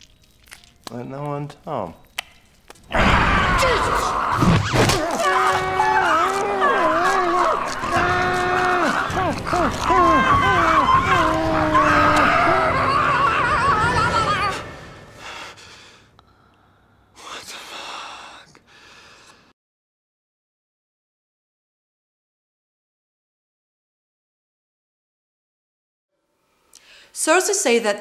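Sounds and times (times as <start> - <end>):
woman screaming: 3.0 - 4.4, 5.0 - 14.8.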